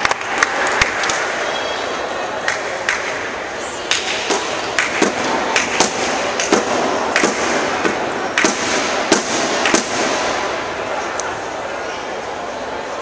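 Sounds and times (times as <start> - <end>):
sports hall background noise: 0.0 - 13.0
rackets striking shuttlecock: 3.9 - 10.1.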